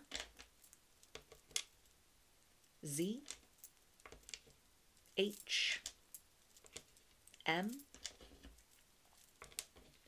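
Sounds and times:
wooden tiles clicking on table: 0.0 - 0.5, 1.1 - 1.7, 3.2 - 4.6, 6.6 - 8.6, 9.3 - 10.0
person speaking a letter: 2.8 - 3.3, 5.2 - 5.9, 7.4 - 7.9.

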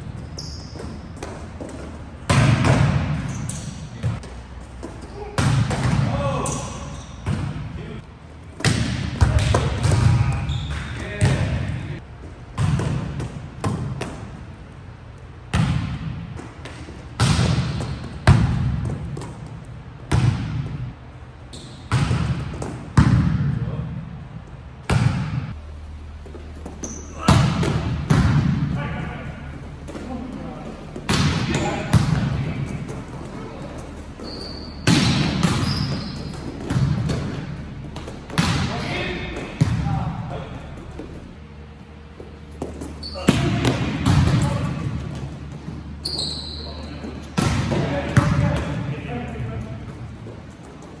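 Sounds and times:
shoe squeak on court floor: 0.2 - 1.2, 10.4 - 11.0, 26.7 - 27.2, 34.1 - 36.7, 42.9 - 43.4, 46.0 - 47.2
players' voices: 26.5 - 50.5
volleyball smacks: 34.8 - 35.8.

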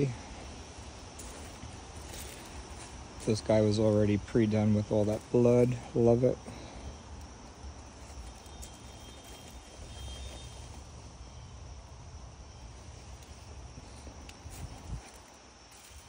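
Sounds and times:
faint insect drone: 0.0 - 16.0.

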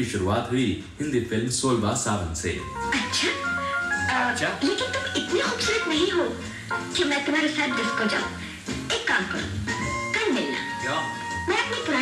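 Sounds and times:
background music with held notes: 0.0 - 12.0
film dialogue: 0.0 - 12.0.

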